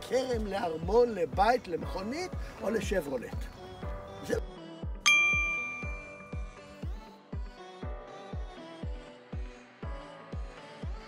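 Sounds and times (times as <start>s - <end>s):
background music with low beat: 0.0s - 11.0s
bell-like ding: 5.1s - 6.9s.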